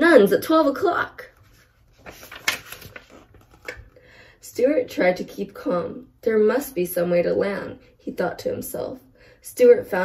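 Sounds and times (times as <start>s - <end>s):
book page turning: 1.3s - 4.0s.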